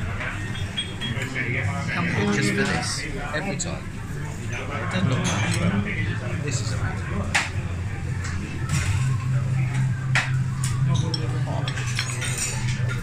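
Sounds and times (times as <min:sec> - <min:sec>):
background chatter: 0:00.0 - 0:13.0
cutlery and crockery clinking: 0:00.2 - 0:01.4, 0:04.5 - 0:05.7, 0:10.2 - 0:13.0.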